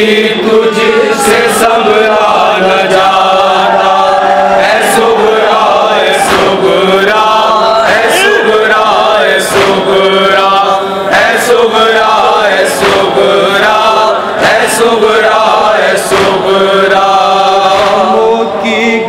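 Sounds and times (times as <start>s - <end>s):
men chanting a lament: 0.0s - 19.0s
chest-beating slaps: 6.2s - 6.8s, 9.5s - 10.0s, 12.7s - 13.3s, 16.0s - 16.6s.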